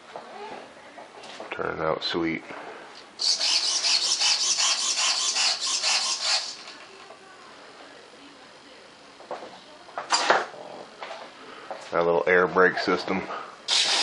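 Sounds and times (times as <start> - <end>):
rapid rasping rub: 3.2 - 6.6.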